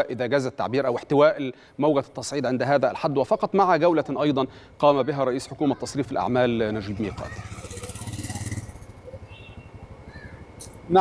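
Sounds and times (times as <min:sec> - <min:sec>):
traffic hum: 0:00.0 - 0:11.0
vehicle engine running: 0:06.4 - 0:10.8.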